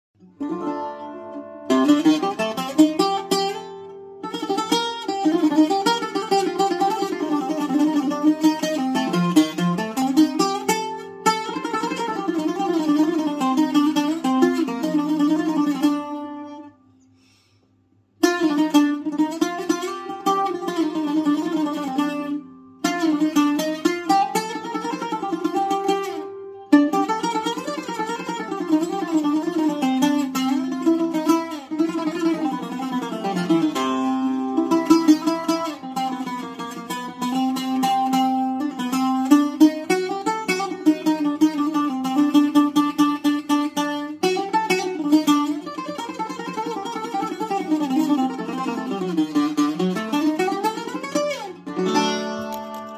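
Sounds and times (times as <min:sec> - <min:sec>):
solo bouzouki improvisation: 0:00.2 - 0:52.9.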